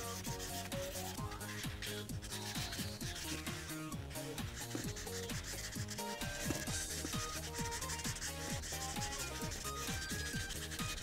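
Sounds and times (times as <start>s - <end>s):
background music: 0.0s - 11.0s
marker scrubbing on paper: 0.0s - 11.0s.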